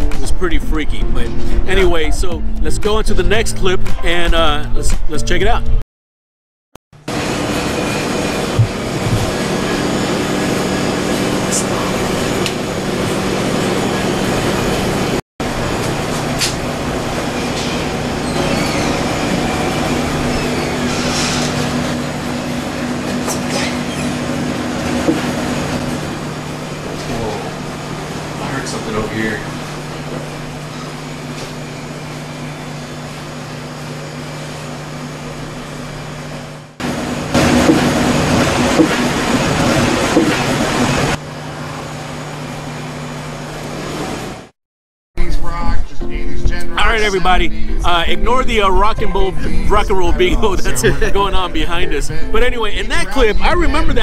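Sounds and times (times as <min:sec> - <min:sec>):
steady low hum: 0:45.2 - 0:54.0
hushed voices: 0:49.3 - 0:52.4.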